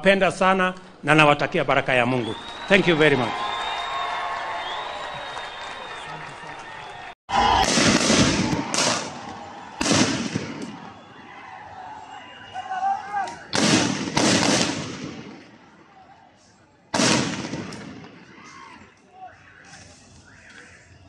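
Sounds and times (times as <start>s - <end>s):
voices shouting: 2.4s - 13.6s, 18.2s - 21.0s
loud echoing gunshots: 7.5s - 11.1s, 13.4s - 15.6s, 16.9s - 18.4s.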